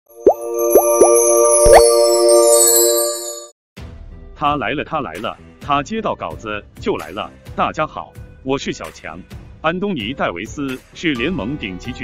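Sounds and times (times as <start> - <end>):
held bright synth chord: 0.1 - 3.5
cartoon pops rising in pitch: 0.2 - 2.0.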